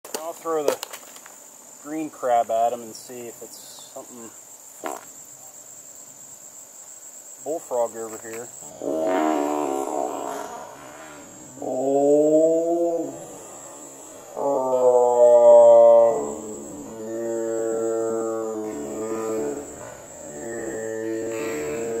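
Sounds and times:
insects trilling: 0.0s - 22.0s
bullfrog deep droning calls: 8.6s - 22.0s.

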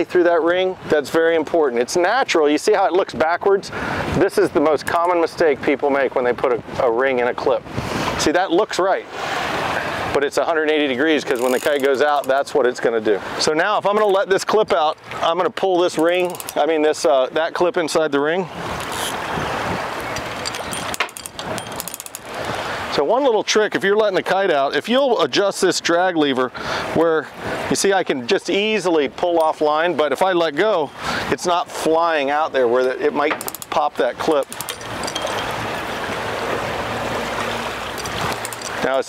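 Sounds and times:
sea water rushing around boat: 0.0s - 39.0s
wind: 0.0s - 39.0s
rapid light ticks: 16.0s - 16.6s
wind buffeting microphone: 18.4s - 23.0s.

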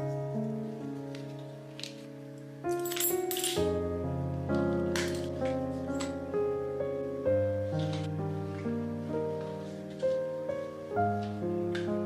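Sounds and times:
background music sustained notes: 0.0s - 12.0s
coins clinking onto banknotes: 2.8s - 3.7s.

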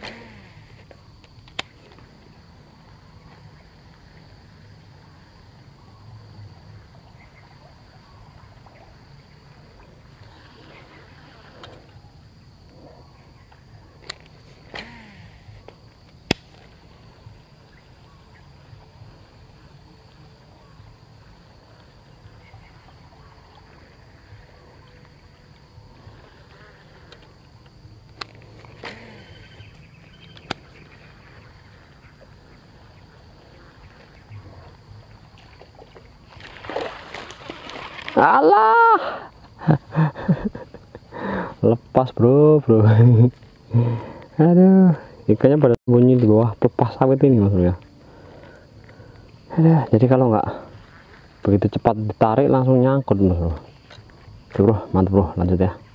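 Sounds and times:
sharp clicks: 0.0s - 1.8s, 14.0s - 15.1s
high insect drone: 0.0s - 55.9s.

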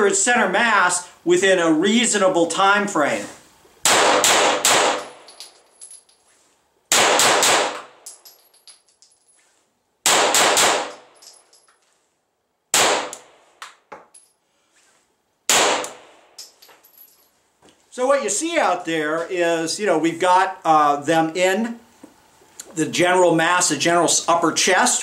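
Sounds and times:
pistol shots echoing: 3.8s - 5.2s, 6.9s - 7.9s, 10.0s - 11.0s, 12.8s - 13.3s, 15.5s - 16.1s.

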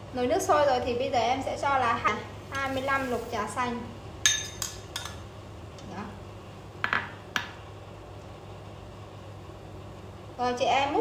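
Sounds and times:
steady low hum: 0.0s - 11.0s
utensil clinking against metal pot: 4.3s - 5.2s.

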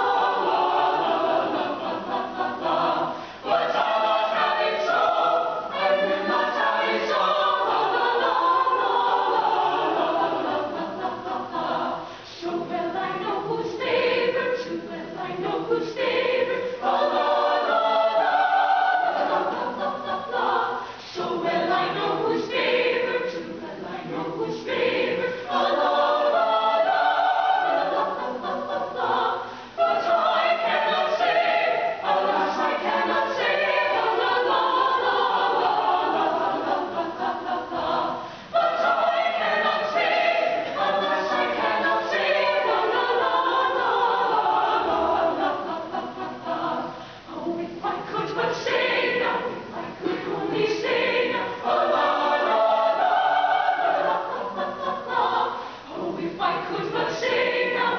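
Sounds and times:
choir singing a cappella: 0.0s - 57.9s.

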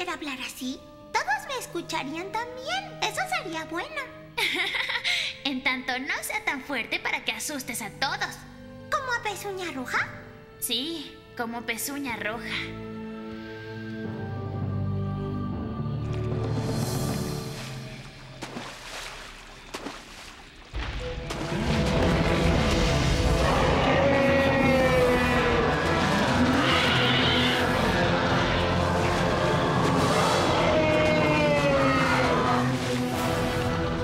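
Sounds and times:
dramatic background music: 0.0s - 34.0s
cartoon dinosaur roaring: 23.2s - 33.1s.

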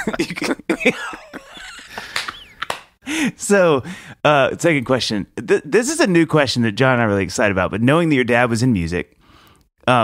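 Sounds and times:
breathing: 3.0s - 4.2s, 9.2s - 9.7s.

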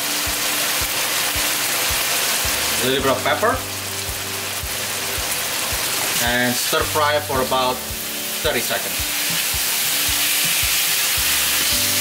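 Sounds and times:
background music with soft beat: 0.0s - 12.0s
meat sizzling in a wok: 0.0s - 12.0s.

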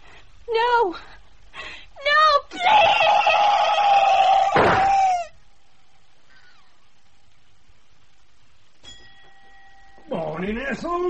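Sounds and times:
low steady background hum: 0.0s - 11.0s
woman screaming: 2.0s - 5.4s.

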